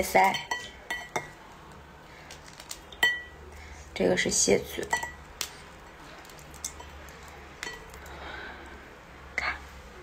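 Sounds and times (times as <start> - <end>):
crab shell cracking: 2.3 - 2.9, 6.2 - 8.1.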